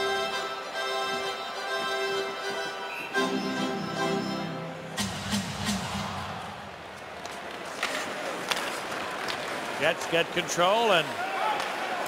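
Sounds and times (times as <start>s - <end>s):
arena organ music: 0.0s - 5.9s
crowd noise: 0.0s - 12.0s
sticks and puck clacking on ice: 7.2s - 9.8s.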